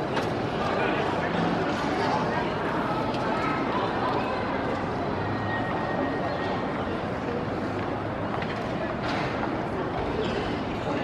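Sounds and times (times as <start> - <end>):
outdoor crowd hubbub: 0.0 - 11.0
spectators chattering: 0.0 - 11.0.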